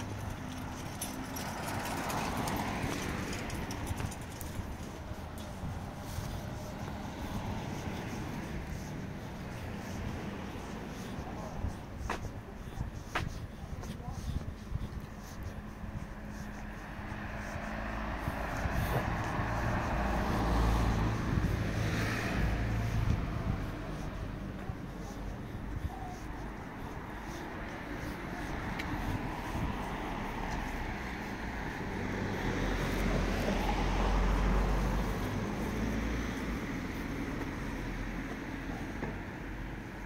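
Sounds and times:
car passing by: 0:00.0 - 0:11.5, 0:16.1 - 0:25.0, 0:27.2 - 0:40.0.

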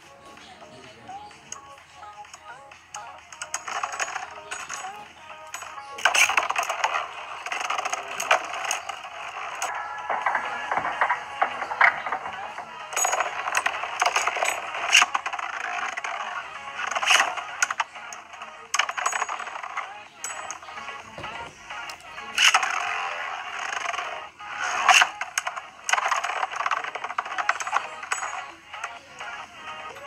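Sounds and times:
background music: 0:00.0 - 0:30.0
sharp metallic clicks: 0:01.5 - 0:30.0
spinning tops clashing: 0:03.4 - 0:21.0, 0:22.3 - 0:29.4.

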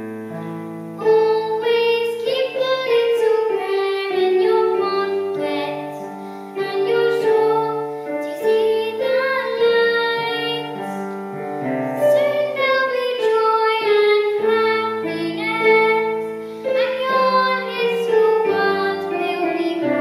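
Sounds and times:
piano accompaniment: 0:00.0 - 0:20.0
girl singing: 0:01.0 - 0:20.0.

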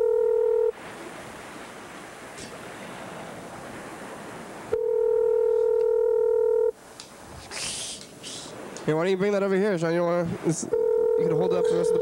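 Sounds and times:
phone line hiss: 0:00.0 - 0:00.8, 0:04.7 - 0:06.8, 0:10.6 - 0:12.0
telephone ringback tone: 0:00.0 - 0:00.8, 0:04.7 - 0:06.8, 0:10.7 - 0:12.0.

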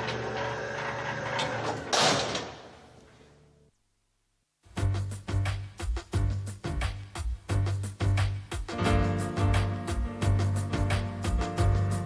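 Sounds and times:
jail cell door rolling and rattling: 0:00.0 - 0:02.9
steel door slamming with a clang: 0:01.7 - 0:02.8.

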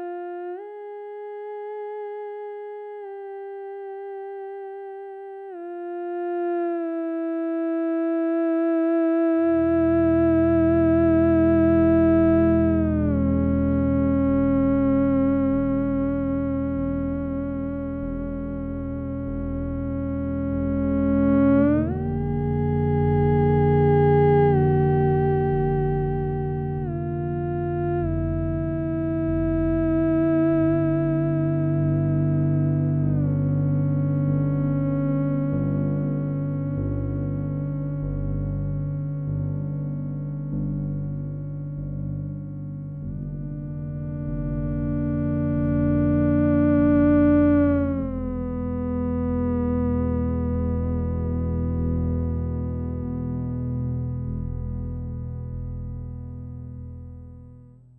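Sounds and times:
theremin melody: 0:09.2 - 0:53.5
low backing track: 0:09.5 - 0:57.9.

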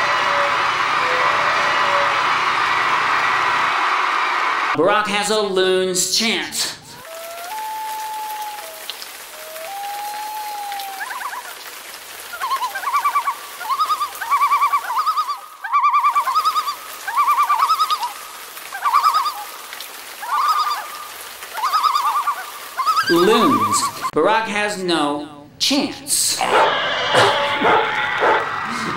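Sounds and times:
loon tremolo calls: 0:07.0 - 0:11.6, 0:12.2 - 0:19.6, 0:20.2 - 0:24.1
loon wailing: 0:07.0 - 0:19.5, 0:20.1 - 0:24.1, 0:26.4 - 0:28.9.

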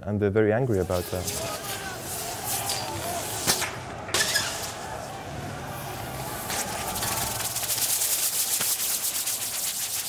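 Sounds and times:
gas canister hissing: 0:06.5 - 0:10.0.

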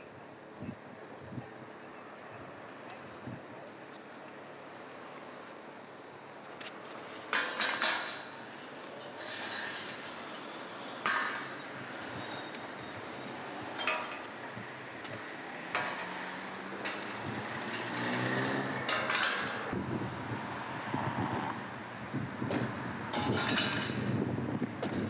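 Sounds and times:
road traffic noise: 0:00.0 - 0:25.0
steel barriers clanking: 0:07.3 - 0:19.8, 0:23.1 - 0:24.2
vehicle engine humming: 0:09.8 - 0:23.2.

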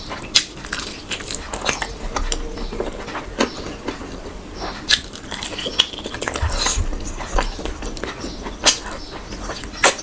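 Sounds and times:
wet chewing: 0:00.0 - 0:10.0.

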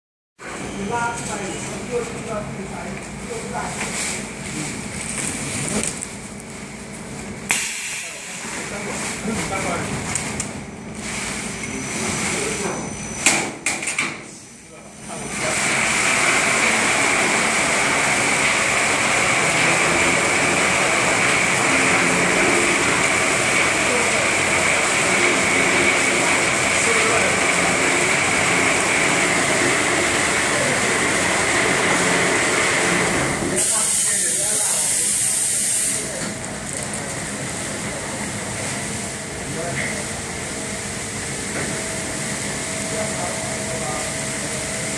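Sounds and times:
factory machinery din: 0:07.4 - 0:44.9.

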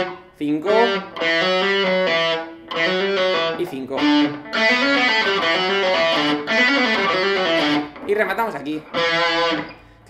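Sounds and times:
distorted electric guitar lead: 0:00.0 - 0:10.0.

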